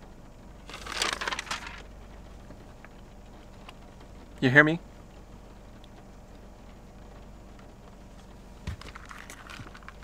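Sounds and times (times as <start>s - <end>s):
paper crinkling and rustling: 0.7s - 1.9s, 8.7s - 10.0s.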